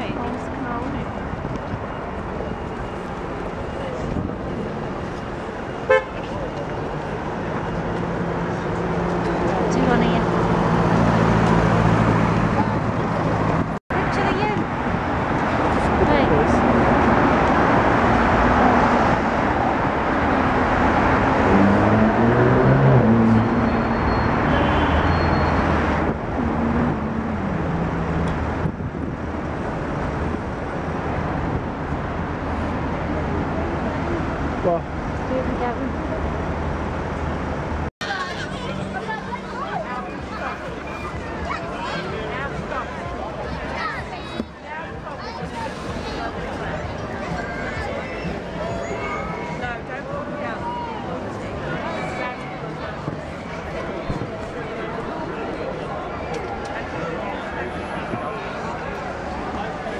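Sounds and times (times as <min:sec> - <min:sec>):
car engines passing: 0:00.0 - 0:59.9
car horn: 0:05.8 - 0:06.4, 0:23.2 - 0:25.8.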